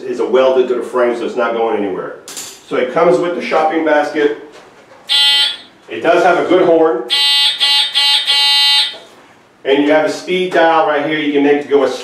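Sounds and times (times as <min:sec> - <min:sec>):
mobility scooter horn blasts: 0:05.1 - 0:05.7, 0:07.1 - 0:09.1.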